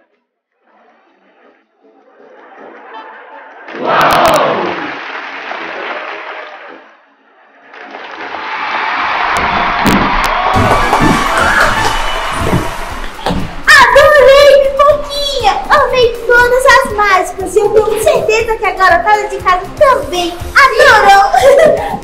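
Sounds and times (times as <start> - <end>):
crowd cheering and applauding: 3.6 - 6.9, 7.6 - 13.7.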